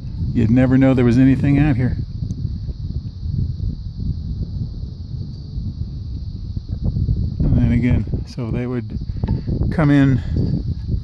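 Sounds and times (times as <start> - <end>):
wind buffeting microphone: 0.0 - 11.0
man talking: 0.3 - 2.0, 7.4 - 9.0, 9.7 - 10.4.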